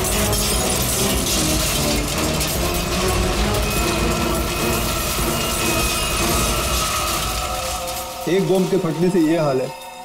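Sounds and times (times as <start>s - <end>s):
debris crumbling and clattering: 0.0s - 10.0s
dramatic background music: 0.0s - 10.0s
explosion rumble: 0.3s - 8.8s.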